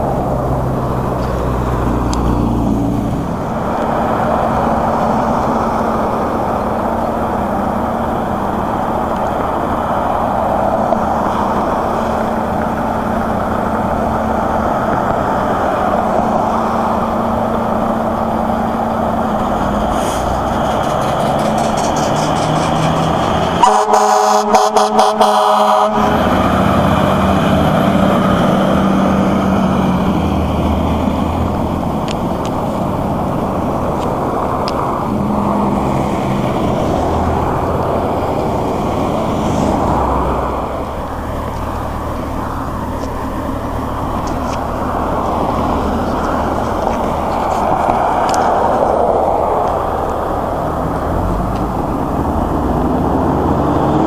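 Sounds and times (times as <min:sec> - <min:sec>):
heavy truck engine pulling away: 0:00.0 - 0:54.0
road traffic: 0:00.0 - 0:54.0
fire truck air horn blasts: 0:23.6 - 0:26.4.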